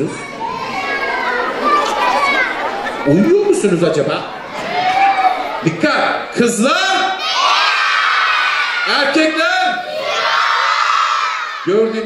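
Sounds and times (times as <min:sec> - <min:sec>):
children shouting together: 0:00.0 - 0:03.3, 0:04.3 - 0:06.4, 0:07.0 - 0:11.7.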